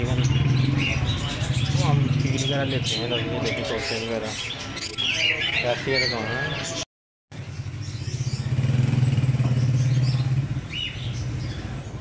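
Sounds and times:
motorcycle engine passing: 0.0s - 3.6s, 7.4s - 12.0s
bird chirp: 0.0s - 12.0s.

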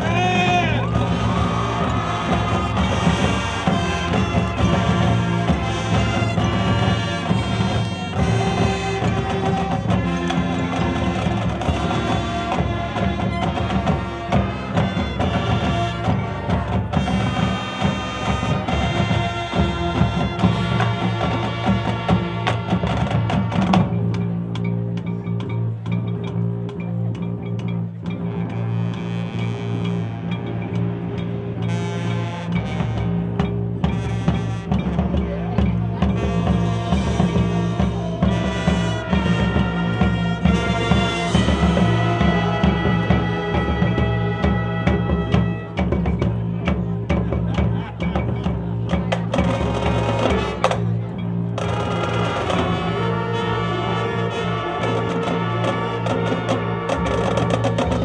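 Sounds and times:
marching band playing: 0.0s - 58.0s.

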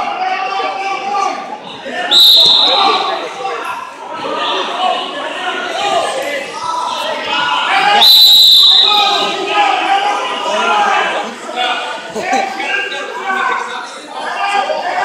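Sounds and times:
crowd chatter: 0.0s - 15.0s
referee's whistle blasts: 2.1s - 3.2s, 7.8s - 9.4s.

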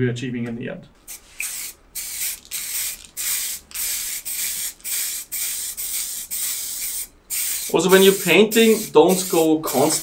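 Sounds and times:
spray paint can hissing: 1.1s - 10.0s.

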